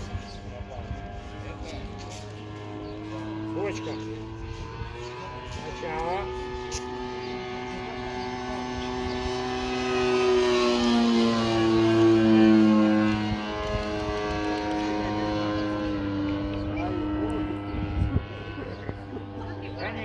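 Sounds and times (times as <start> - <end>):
model airplane engine flying overhead: 0.0 - 20.0.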